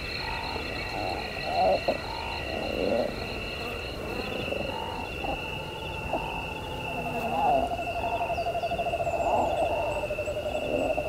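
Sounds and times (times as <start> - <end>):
low animal-like croaking calls: 0.0 - 11.0.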